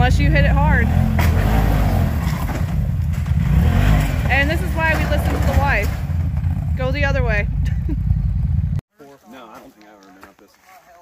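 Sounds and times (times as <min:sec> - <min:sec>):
engine running: 0:00.0 - 0:08.8.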